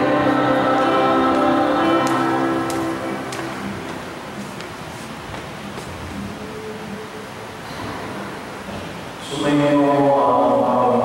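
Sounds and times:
choir singing a hymn: 0.0 - 4.4.

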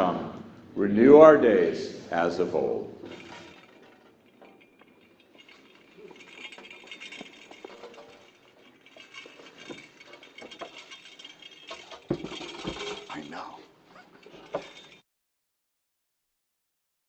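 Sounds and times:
metal finials clinking: 3.0 - 15.0.

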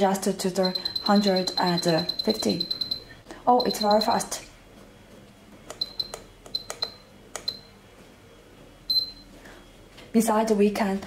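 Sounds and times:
short high beeps: 0.6 - 4.2.

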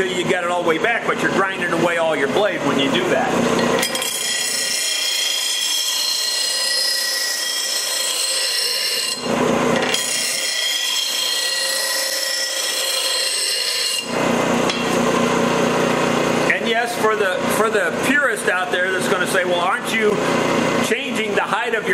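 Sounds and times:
blade grinding on bench grinder: 2.9 - 16.5.

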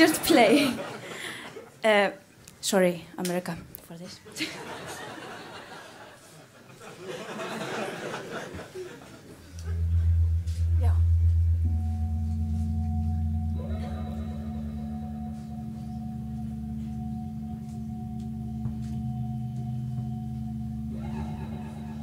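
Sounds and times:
electronic keyboard chord: 9.5 - 22.0
thin high tone: 9.5 - 22.0.

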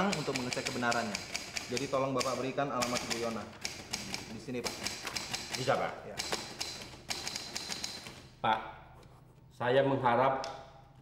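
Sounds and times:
typewriter keys clacking: 0.0 - 8.2.

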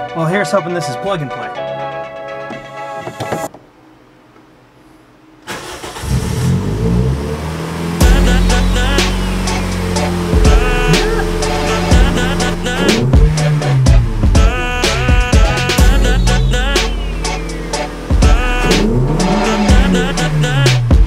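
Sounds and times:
background music: 0.0 - 3.5, 7.8 - 21.0
car engine starting and revving: 5.4 - 21.0
loud music with heavy beat: 8.0 - 21.0.

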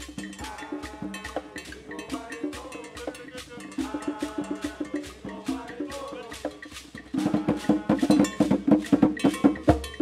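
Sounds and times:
conga drums playing: 0.0 - 10.0
cowbell pattern: 0.0 - 10.0.

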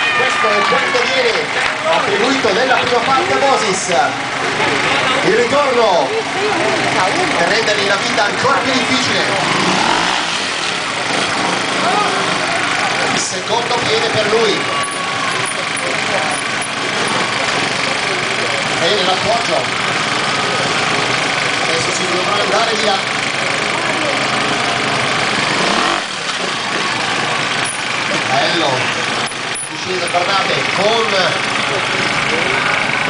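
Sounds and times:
dense background noise: 0.0 - 33.0
motorcycle engine idling: 0.0 - 33.0
man talking: 0.2 - 4.2, 4.8 - 9.5, 11.8 - 14.8, 29.7 - 32.8.

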